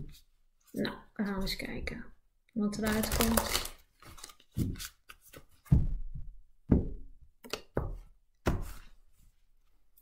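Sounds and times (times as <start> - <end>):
cards rustling: 2.8 - 5.7.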